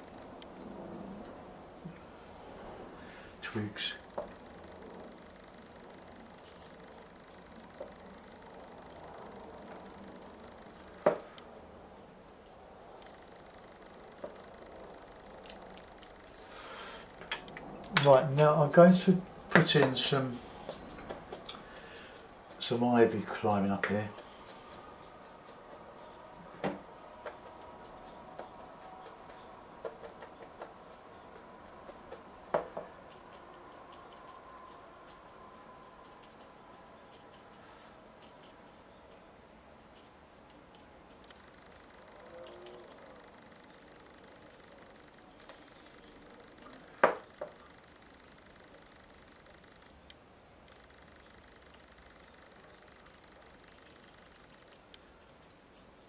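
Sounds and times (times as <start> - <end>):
faint steady hum: 0.0 - 56.0
brush strokes on paper: 6.4 - 7.7, 19.3 - 32.3.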